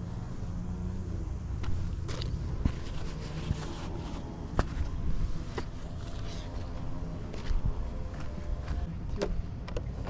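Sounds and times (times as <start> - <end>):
plush toy and cap rustling: 1.6 - 6.7.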